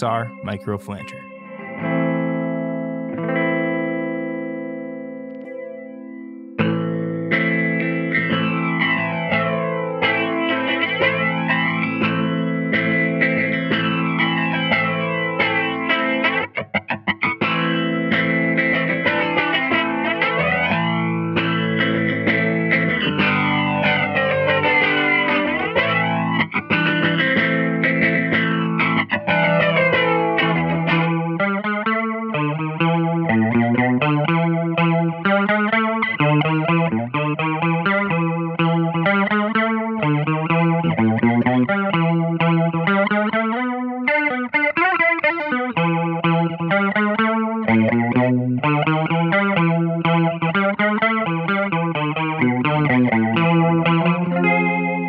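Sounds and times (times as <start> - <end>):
electric guitar chords with flanger: 0.0 - 55.0.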